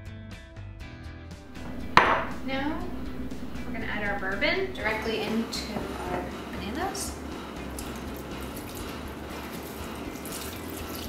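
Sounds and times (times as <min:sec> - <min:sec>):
liquid pouring into bowl: 0:07.3 - 0:11.0.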